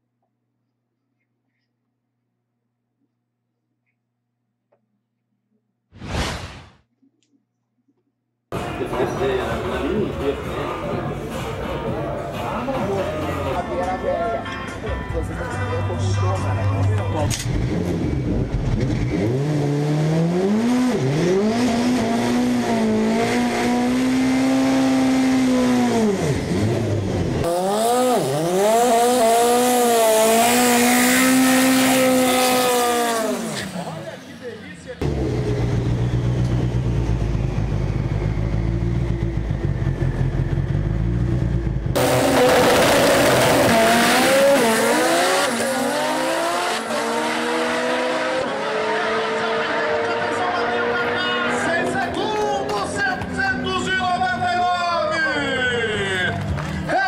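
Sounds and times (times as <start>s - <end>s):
car engine revving: 16.8s - 34.3s, 35.0s - 52.2s.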